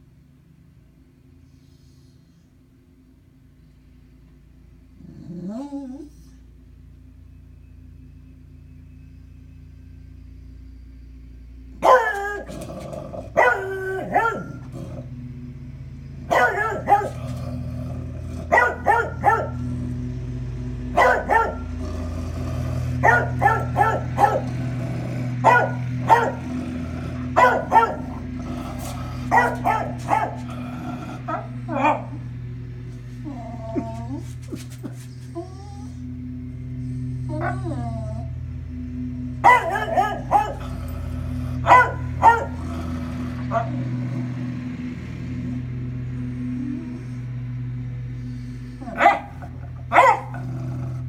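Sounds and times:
steady low hum: 0.0s - 51.0s
dog barking: 11.8s - 15.0s, 16.3s - 17.6s, 18.4s - 19.8s, 20.9s - 21.9s, 23.0s - 32.3s, 39.4s - 44.0s, 48.8s - 50.6s.

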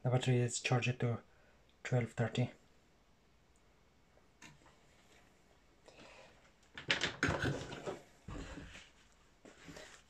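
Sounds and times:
tools knocking and rustling: 6.7s - 8.7s.

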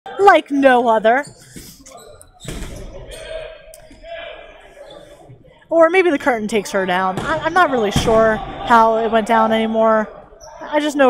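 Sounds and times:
distant players' voices: 1.2s - 11.0s.

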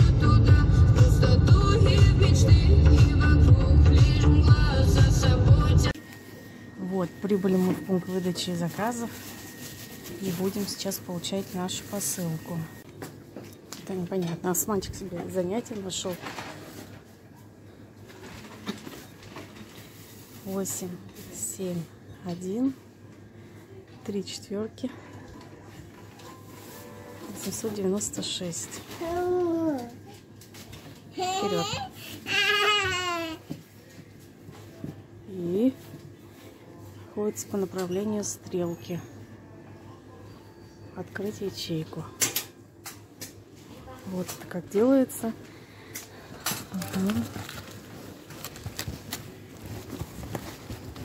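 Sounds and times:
room ambience hum: 0.0s - 51.0s
plastic film crinkling: 7.8s - 12.5s, 46.4s - 51.0s.

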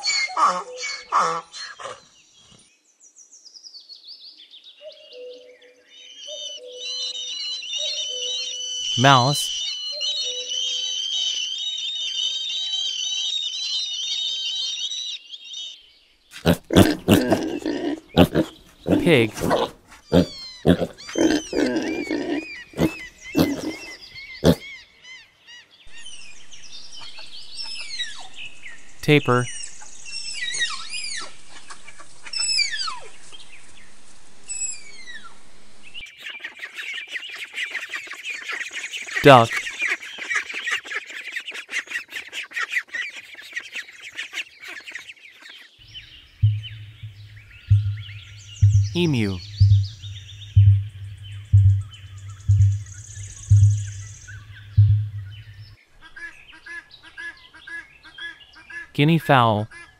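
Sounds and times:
small birds chirping: 0.0s - 59.9s
ducklings peeping: 16.4s - 24.6s, 36.1s - 58.9s
pigs grunting and squealing: 16.4s - 24.7s
music with low thumping beat: 46.4s - 55.8s.

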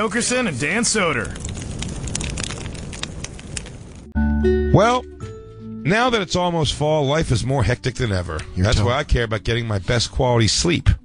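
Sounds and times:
fire crackling and popping: 0.0s - 4.2s.

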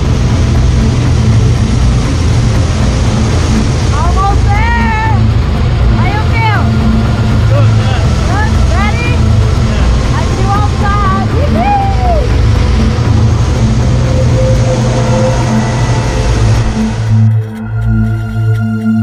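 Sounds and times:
airplane engine and propeller drone: 0.0s - 19.0s.

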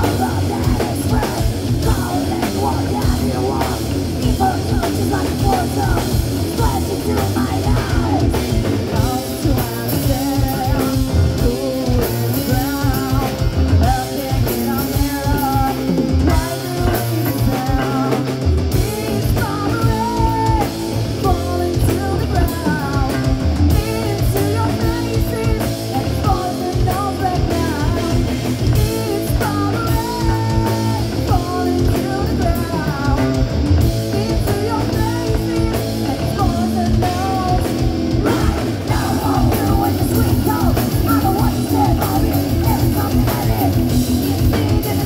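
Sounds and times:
live rock band playing: 0.0s - 45.0s
woman singing lead: 0.0s - 45.0s.

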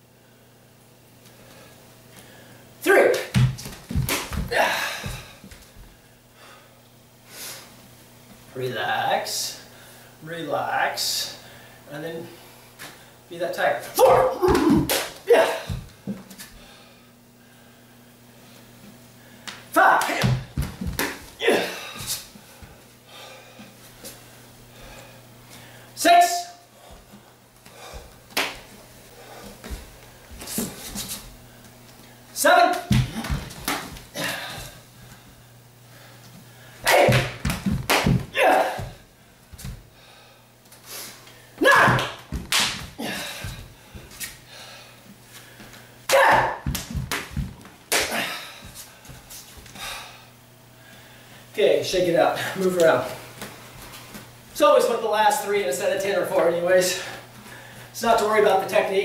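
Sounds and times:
person shouting: 2.8s - 3.4s, 4.4s - 5.2s, 14.0s - 15.8s, 19.7s - 20.5s, 21.4s - 22.0s, 26.0s - 26.6s, 32.4s - 33.4s, 36.8s - 37.4s, 38.3s - 39.0s, 41.6s - 42.2s, 46.1s - 46.8s
hands slapping: 3.1s - 5.2s, 14.0s - 15.9s, 19.4s - 21.3s, 28.3s - 28.7s, 32.7s - 34.4s, 36.9s - 38.9s, 41.7s - 43.6s, 46.1s - 48.3s
bare feet on hardwood floor: 3.3s - 6.0s, 20.0s - 21.4s, 26.8s - 32.0s, 32.7s - 35.2s, 36.2s - 39.9s, 41.8s - 44.4s, 45.4s - 49.8s.

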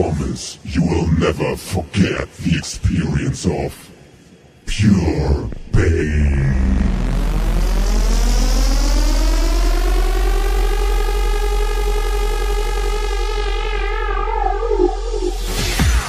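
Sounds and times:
deep bass drone: 5.1s - 16.0s
synthesizer tone gliding up: 13.1s - 15.7s.

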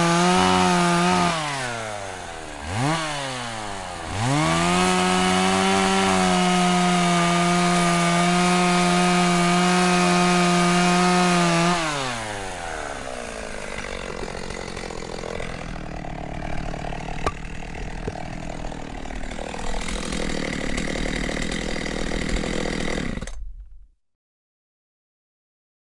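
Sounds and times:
chainsaw running: 0.0s - 23.6s.

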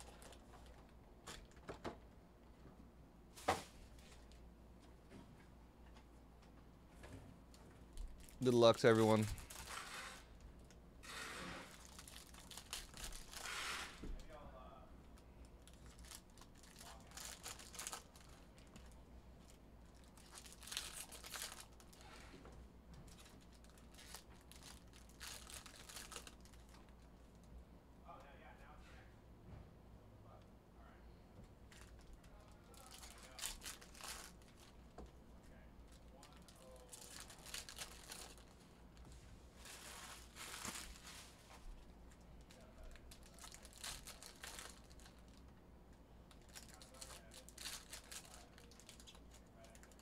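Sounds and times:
foil wrappers crinkling: 8.2s - 10.3s, 11.0s - 14.0s, 15.6s - 18.9s, 19.9s - 22.2s, 23.1s - 27.0s, 32.7s - 34.8s, 35.8s - 38.6s, 39.6s - 41.7s, 42.4s - 45.5s, 46.3s - 50.0s.

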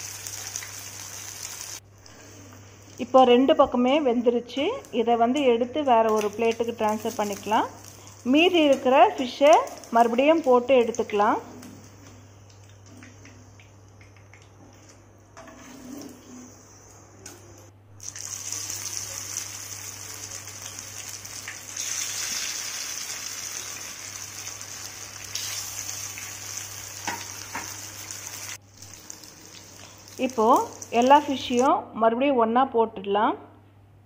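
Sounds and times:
fish sizzling in hot oil: 0.0s - 1.8s, 18.0s - 30.9s.

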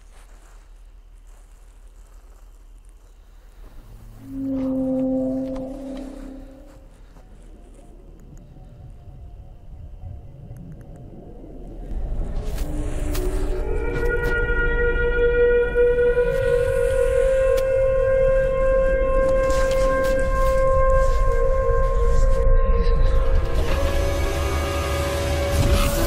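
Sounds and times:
deep rumble: 0.0s - 26.0s
siren-like horn tones: 3.6s - 10.1s, 11.8s - 26.0s.

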